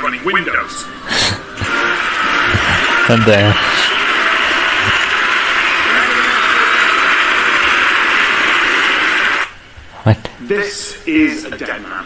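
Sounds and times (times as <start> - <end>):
loud static hiss: 0.0 - 12.0.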